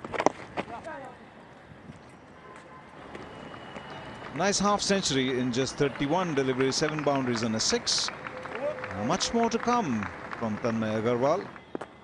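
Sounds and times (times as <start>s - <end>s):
open-ground ambience: 0.0s - 12.0s.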